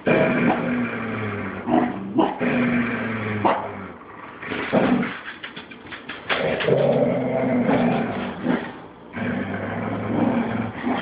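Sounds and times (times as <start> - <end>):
dogs growling: 0.0 - 11.0.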